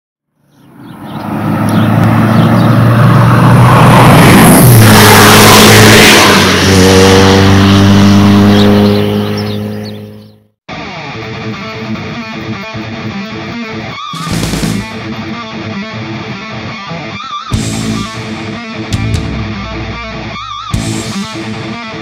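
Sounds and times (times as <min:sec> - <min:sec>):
car passing by: 0:00.6 - 0:10.3
steady engine hum: 0:00.7 - 0:10.4.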